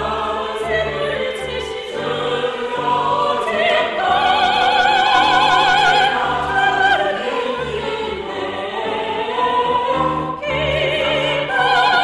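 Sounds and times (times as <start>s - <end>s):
choir singing: 0.0s - 12.0s
piano: 0.0s - 12.0s
strings: 0.0s - 12.0s.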